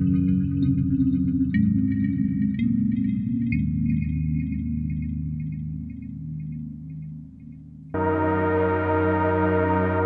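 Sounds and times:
synthesizer low chord: 0:07.9 - 0:10.0
bell-like high synth notes: 0:08.0 - 0:10.0.

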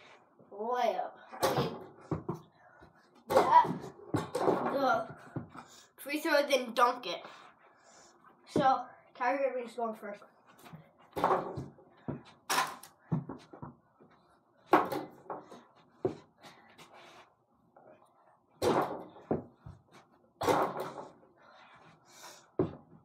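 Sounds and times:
ball knocking against hoop and door: 0:14.7 - 0:16.2.

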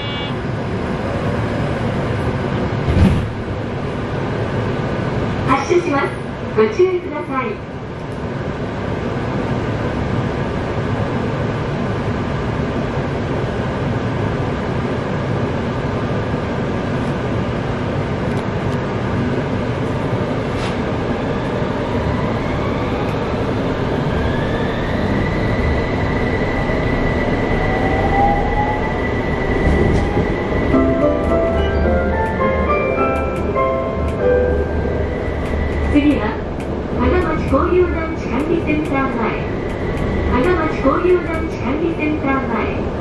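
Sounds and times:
tram rolling noise: 0:00.0 - 0:43.0.

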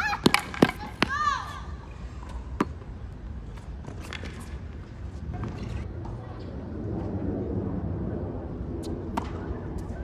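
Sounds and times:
low background rumble: 0:05.0 - 0:10.0.

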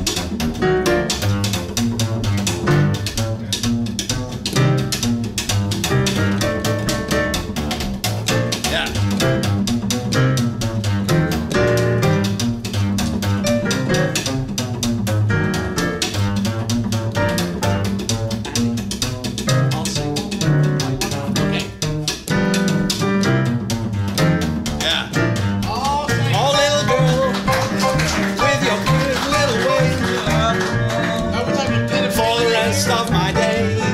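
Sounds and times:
double bass line: 0:00.0 - 0:33.9
piano chords: 0:00.0 - 0:33.9
rhythm strokes: 0:00.0 - 0:33.9.

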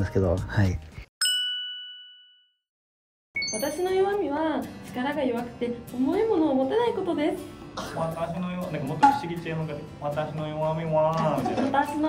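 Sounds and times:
bright two-tone ding: 0:01.2 - 0:02.6, 0:03.4 - 0:04.0.

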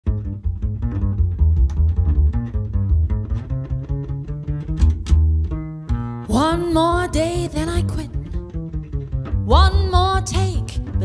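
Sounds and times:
plucked double bass: 0:00.0 - 0:11.0.

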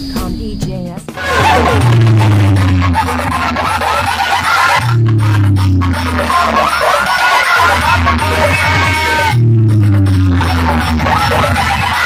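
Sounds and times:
loud bass-heavy music: 0:00.0 - 0:12.0.

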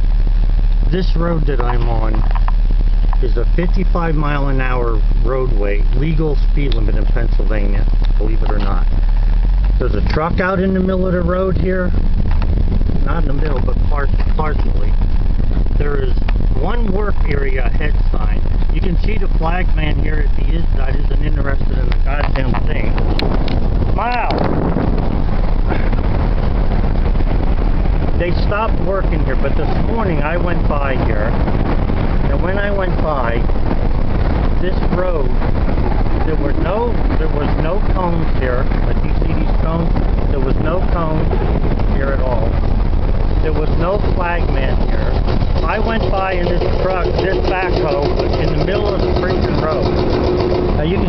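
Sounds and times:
engine idling: 0:00.0 - 0:51.0
vehicle rumbling over gravel: 0:00.0 - 0:51.0
wind buffeting microphone: 0:00.0 - 0:51.0.

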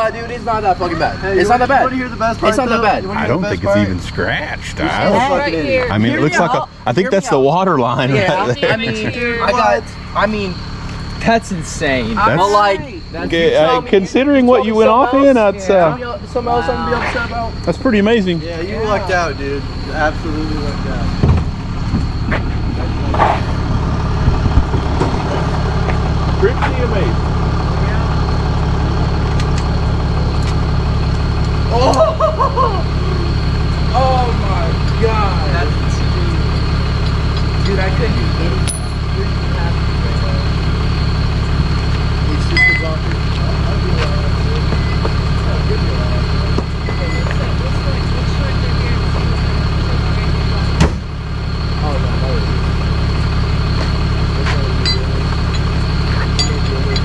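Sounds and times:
truck engine idling: 0:00.0 - 0:57.0
faint voices: 0:11.2 - 0:30.9, 0:31.6 - 0:50.8.

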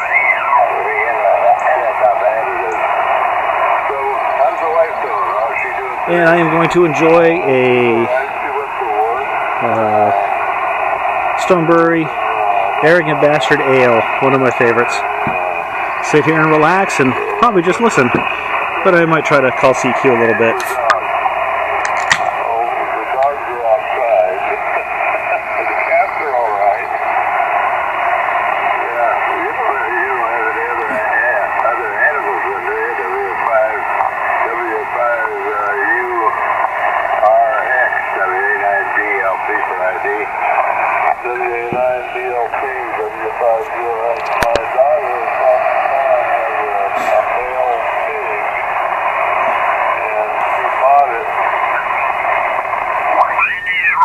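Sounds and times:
radio hiss: 0:00.0 - 0:54.0
radio voices from speaker: 0:00.0 - 0:54.0.

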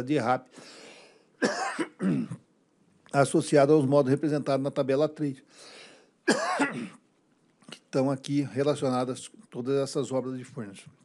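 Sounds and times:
man coughing: 0:01.4 - 0:02.4, 0:06.3 - 0:07.0.

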